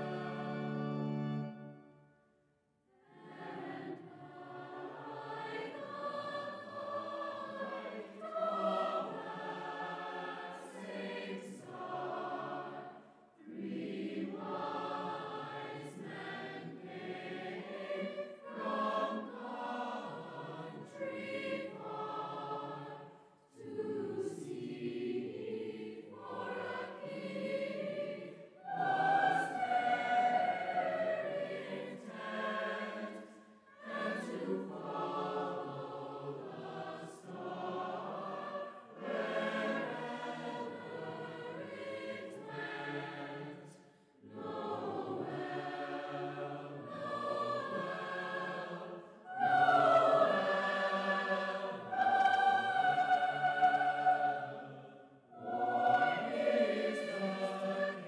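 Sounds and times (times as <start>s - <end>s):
choir singing: 0.0s - 2.2s, 2.9s - 58.0s.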